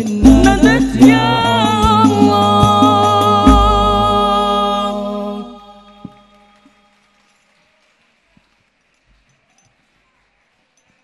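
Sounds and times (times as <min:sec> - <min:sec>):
group of voices singing: 0:00.0 - 0:06.3.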